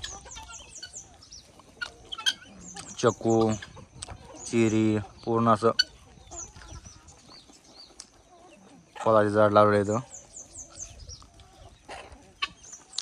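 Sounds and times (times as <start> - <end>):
chickens clucking: 0.0 - 13.0.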